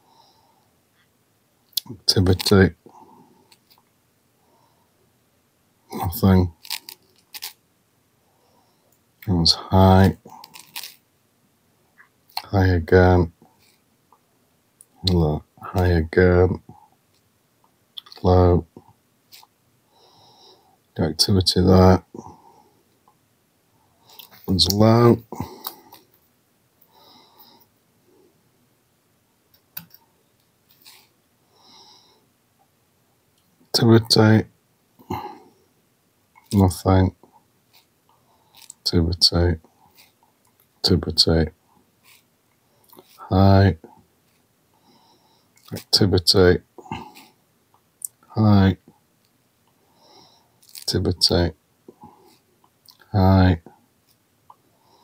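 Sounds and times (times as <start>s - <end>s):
faint breath through nose: 26.8s - 28.4s, 44.6s - 45.6s, 49.8s - 50.6s.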